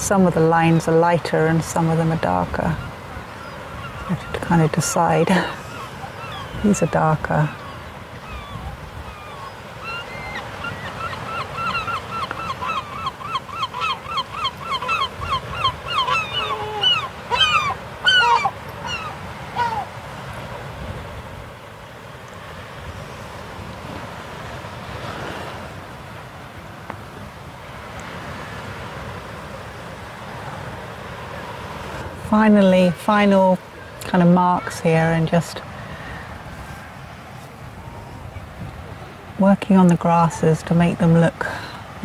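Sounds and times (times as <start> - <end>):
surf: 0.0 - 42.0
wind: 0.0 - 42.0.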